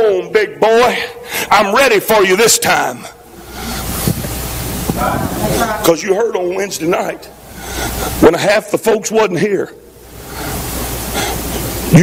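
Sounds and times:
breath blowing onto microphone: 3.4 - 5.8.

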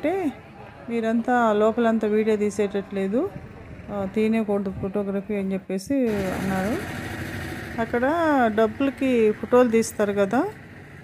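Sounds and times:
mechanical running noise: 6.1 - 11.0.

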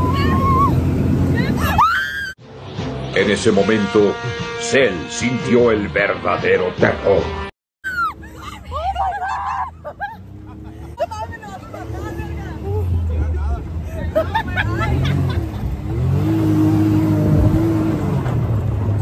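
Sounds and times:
women laughing and shrieking: 0.0 - 0.8, 1.4 - 2.4, 7.8 - 13.0, 13.8 - 15.8
off-road vehicle engine: 0.0 - 5.4, 6.4 - 19.0.

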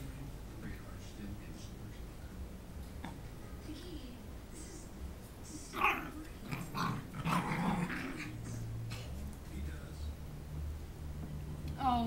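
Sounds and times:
puppies growling: 5.7 - 9.4.

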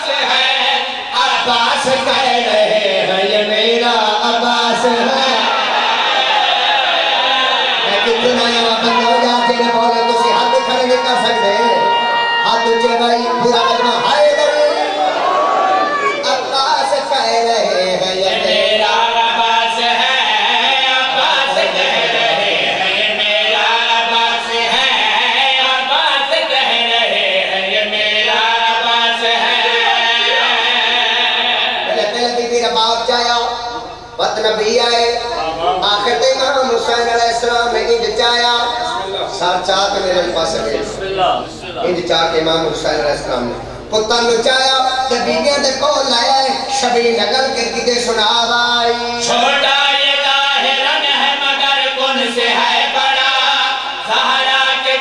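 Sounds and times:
men chanting in unison: 0.0 - 11.4, 17.6 - 32.2, 49.2 - 55.0.

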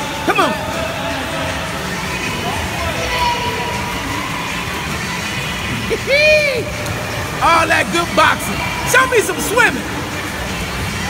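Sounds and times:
echoing pool noise: 0.0 - 11.0
faint voices: 0.0 - 11.0.

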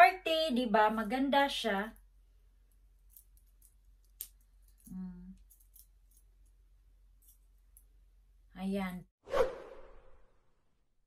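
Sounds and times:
metal bracelets clicking: 3.0 - 6.6.

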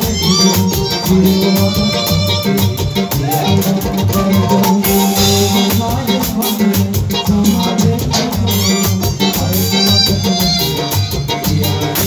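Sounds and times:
drum kit and percussion: 0.0 - 12.0
repeating bass line: 0.0 - 12.0.

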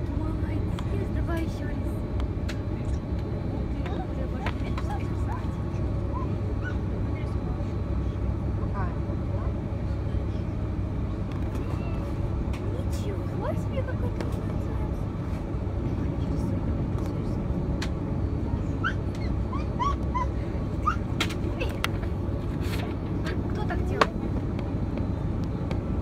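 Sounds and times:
aircraft engines low rumble: 0.0 - 26.0.

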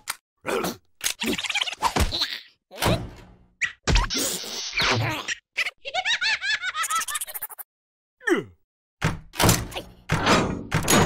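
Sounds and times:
heavy thunks and clatter: 9.0 - 11.0.

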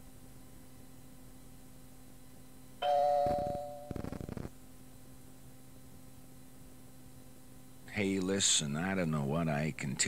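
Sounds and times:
bright chime tone: 2.8 - 3.9.

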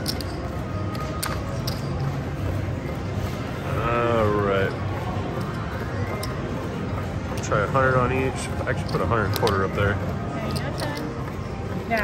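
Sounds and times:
casino chips clicking: 0.0 - 2.2, 8.7 - 12.0
steady low background hum: 0.0 - 12.0.

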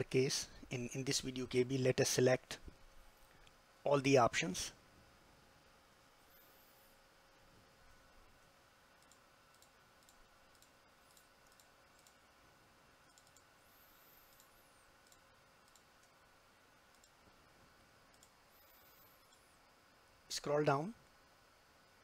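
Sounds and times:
low steady hum: 0.0 - 22.0
faint computer mouse clicks: 9.0 - 12.2, 13.1 - 13.5, 14.2 - 16.2, 16.9 - 17.2, 18.1 - 19.5.

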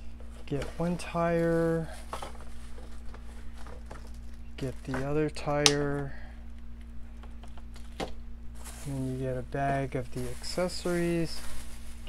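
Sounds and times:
plastic bags rustling and clicking: 0.0 - 12.0
steady low hum: 0.0 - 12.0.

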